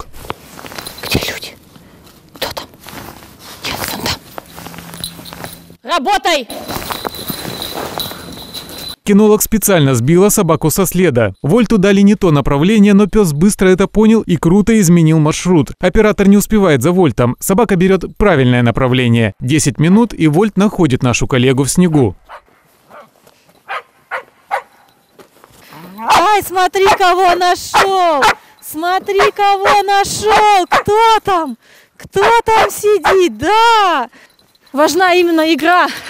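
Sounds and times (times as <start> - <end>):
dog barking: 22.3 - 23.1, 23.7 - 24.9, 26.1 - 28.5, 29.2 - 31.0, 32.2 - 33.3.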